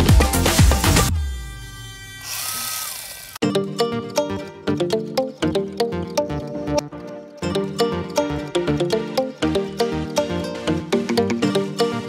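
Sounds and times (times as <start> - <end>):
music: 0.0 - 2.2, 3.4 - 12.0
cordless chainsaw motor whine: 1.1 - 3.4.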